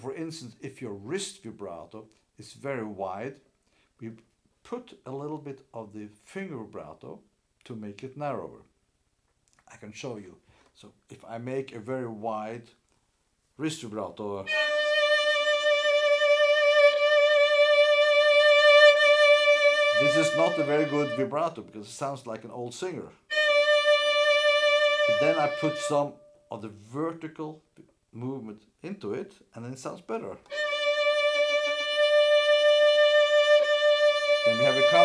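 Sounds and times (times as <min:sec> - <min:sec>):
violin note with wide vibrato: 0:14.5 - 0:21.6, 0:23.3 - 0:26.5, 0:30.5 - 0:35.0.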